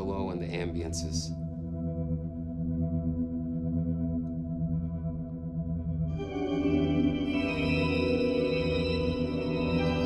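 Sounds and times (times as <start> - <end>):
organ chord held: 6.1 - 10.0.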